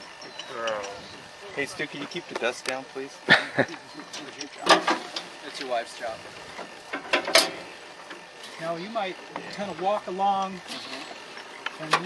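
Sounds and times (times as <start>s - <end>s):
metal mechanism clanking: 4.0s - 5.8s, 6.9s - 7.7s.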